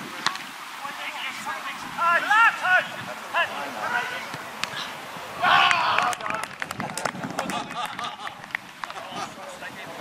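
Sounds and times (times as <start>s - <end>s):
players shouting: 1.0s - 6.6s.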